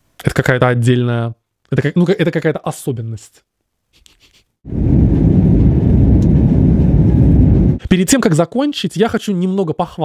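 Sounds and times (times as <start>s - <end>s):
loud low rumbling: 4.7s - 7.8s.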